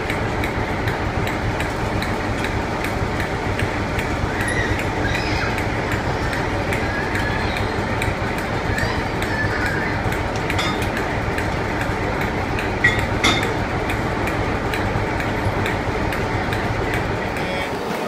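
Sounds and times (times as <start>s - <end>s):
train rumble and hiss: 0.0s - 18.0s.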